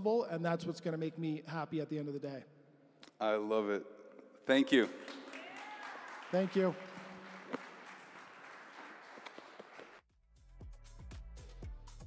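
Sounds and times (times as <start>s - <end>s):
audience applauding faintly: 4.6s - 10.0s
sharp individual claps: 4.7s - 10.0s.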